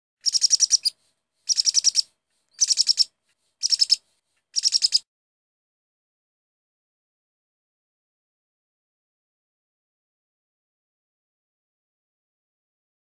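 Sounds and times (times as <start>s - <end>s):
bird chirping: 0.2s - 5.0s.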